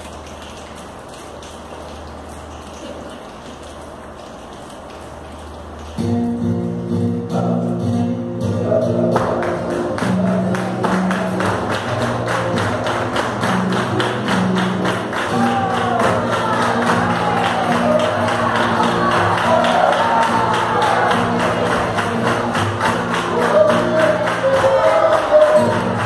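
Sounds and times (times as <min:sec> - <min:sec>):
rhythmic hand-clapping: 0:00.0 - 0:07.5, 0:08.9 - 0:26.0.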